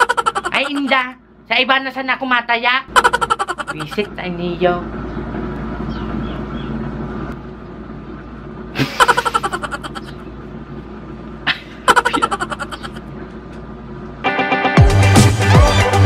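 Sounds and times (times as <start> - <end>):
rapid engine pulsing: 2.9 - 14.0
vehicle engine running: 2.9 - 15.4.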